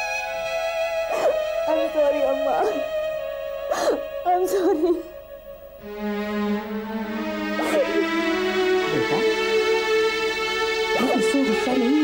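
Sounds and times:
sad background music: 0.0 - 12.0
woman sobbing: 1.1 - 2.9, 3.7 - 5.2, 7.6 - 8.2.

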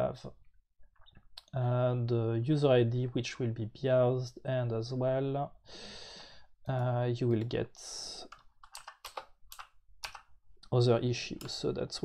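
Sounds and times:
keyboard keystrokes: 8.3 - 10.3.

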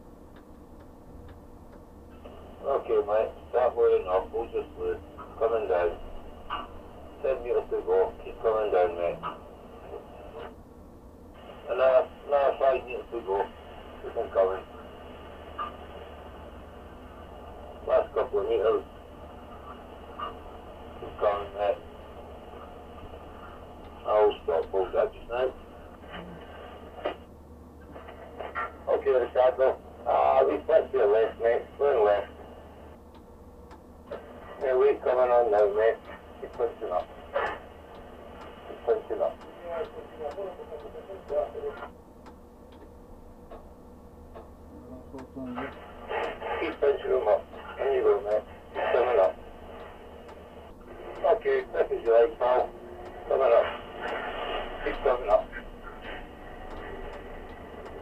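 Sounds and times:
man's voice over radio speaker: 2.2 - 10.5, 11.4 - 15.8, 17.1 - 27.2, 27.8 - 32.6, 34.1 - 37.7, 38.4 - 41.9, 44.7 - 49.9, 50.9 - 58.0.

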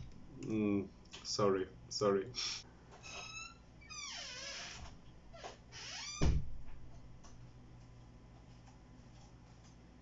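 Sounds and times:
squeaky door hinges creaking: 3.0 - 6.4
door thud: 6.2 - 6.7.

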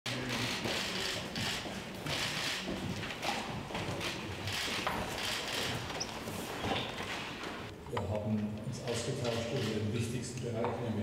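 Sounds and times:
camera shutters clicking: 4.4 - 5.9, 9.2 - 9.8.

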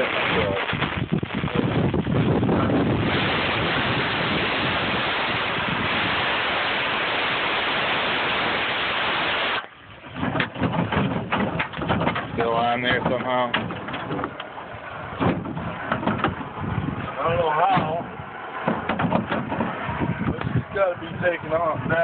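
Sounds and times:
cutting torch hissing: 0.0 - 9.7
knocks and rustles: 10.0 - 16.8, 17.7 - 20.2.

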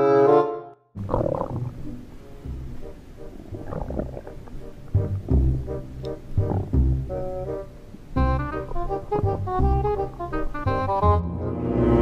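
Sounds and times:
low burbling notes: 1.0 - 12.0.

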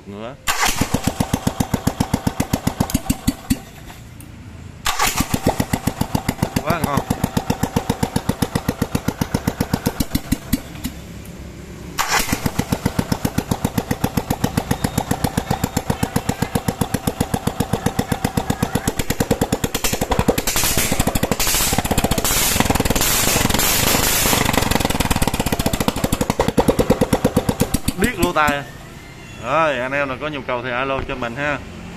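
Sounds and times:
petrol engine running: 0.5 - 29.3.

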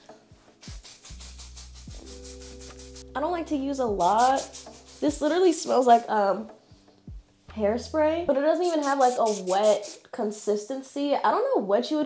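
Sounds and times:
background music with bass: 0.1 - 8.8
hair mist spray hisses: 0.6 - 3.1, 4.0 - 6.0, 8.5 - 10.1.

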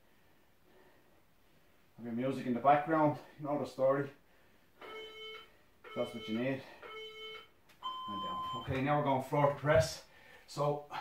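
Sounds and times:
electronic timer beeps: 4.8 - 8.7.

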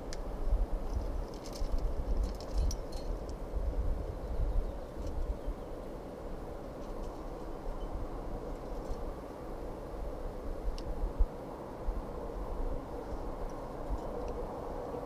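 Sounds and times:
wind buffeting microphone: 0.0 - 15.0
metallic clinks of carabiners: 1.4 - 3.2.

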